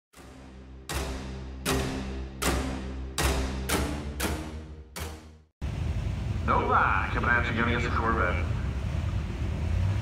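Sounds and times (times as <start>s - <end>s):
music with slow heavy beat: 0.2s - 5.5s.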